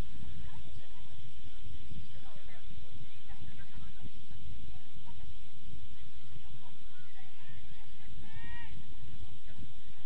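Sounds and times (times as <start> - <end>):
wind buffeting microphone: 0.0 - 10.0
players shouting and calling: 6.0 - 9.7.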